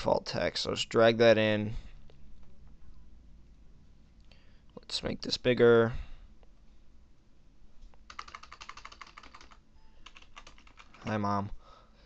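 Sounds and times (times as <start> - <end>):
faint keyboard typing: 7.9 - 11.3.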